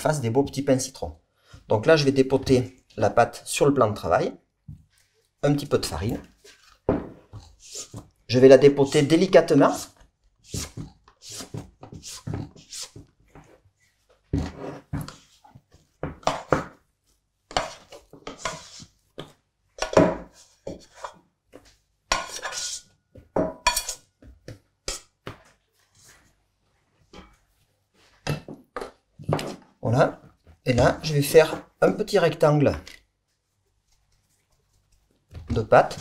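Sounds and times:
metal bowl scraping and knocking: 0:23.4 - 0:24.0.

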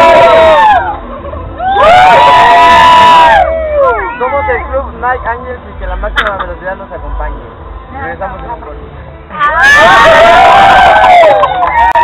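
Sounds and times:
crowd cheering and shouting: 0:00.0 - 0:04.8, 0:09.3 - 0:12.0.

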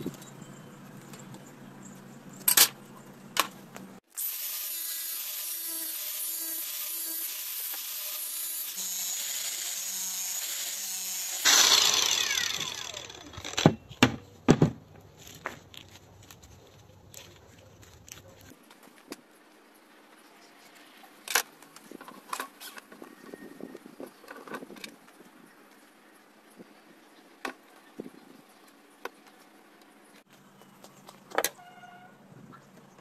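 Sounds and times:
angle grinder cutting plastic pipe: 0:04.1 - 0:13.8.

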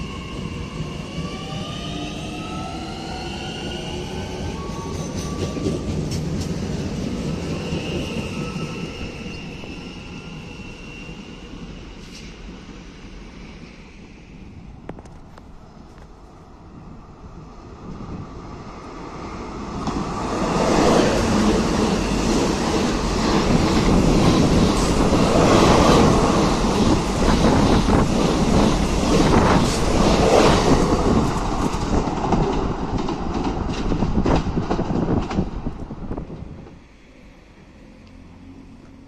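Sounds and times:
train passing close by: 0:00.0 - 0:39.0.

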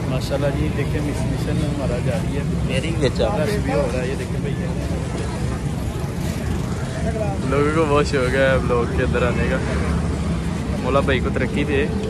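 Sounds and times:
people talking: 0:00.0 - 0:10.0, 0:10.6 - 0:12.0
road traffic rumble: 0:00.0 - 0:12.0.

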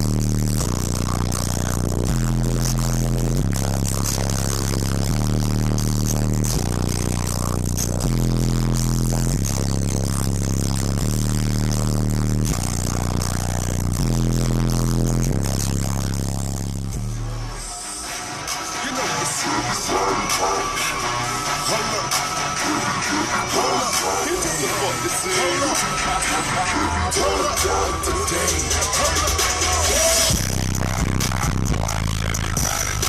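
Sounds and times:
deep bass-heavy music: 0:00.0 - 0:33.0.

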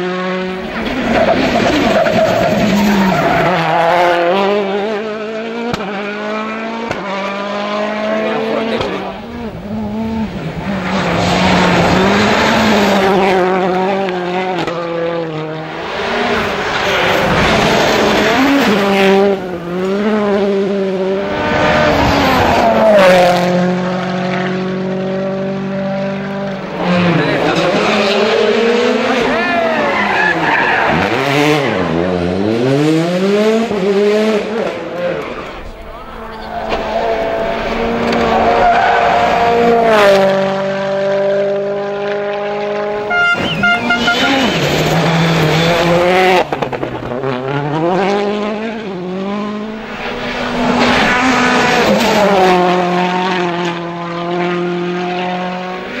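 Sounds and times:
car downshifting and braking: 0:00.0 - 0:56.0
rally car engines revving: 0:00.0 - 0:56.0.

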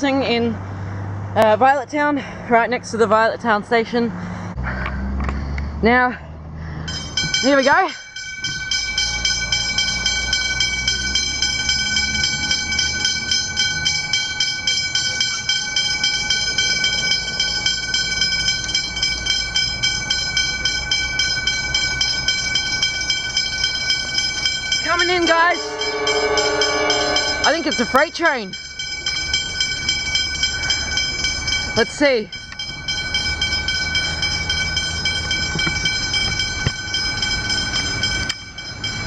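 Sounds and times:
level crossing bells ringing: 0:06.8 - 0:39.0.

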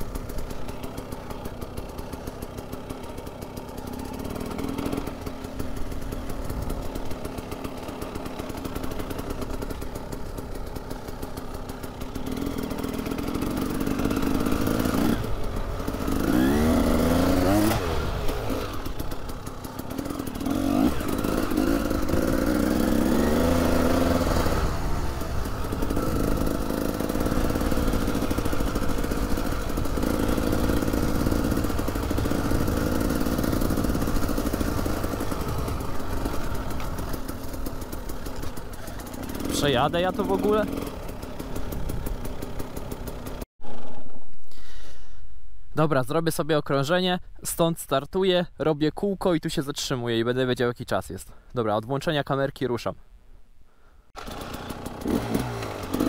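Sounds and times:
motorcycle engine revving: 0:00.0 - 0:44.2, 0:54.2 - 0:56.0.

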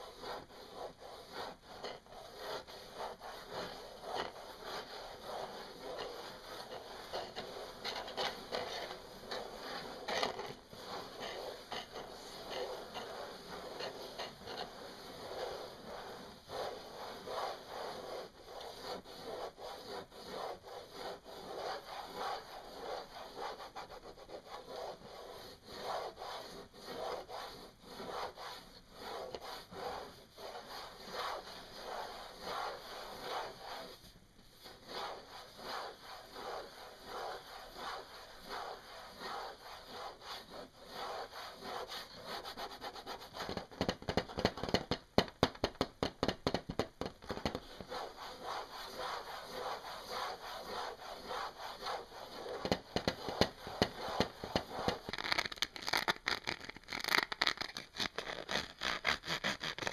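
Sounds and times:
fingernails scratching hard surface: 0:00.0 - 0:34.0, 0:34.6 - 0:59.9.

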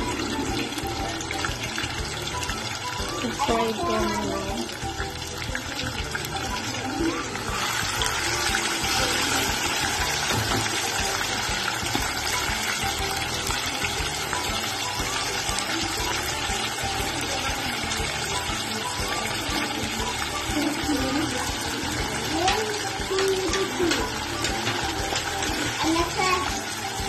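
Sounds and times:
hot oil sizzling: 0:00.0 - 0:27.0.

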